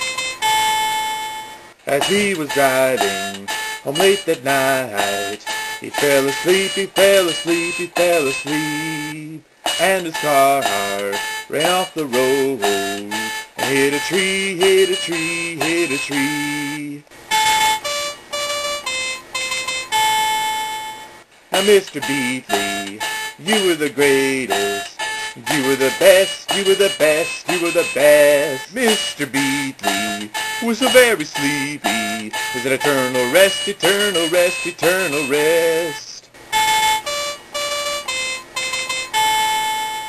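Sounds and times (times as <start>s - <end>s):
electronic keyboard melody: 0.0s - 40.0s.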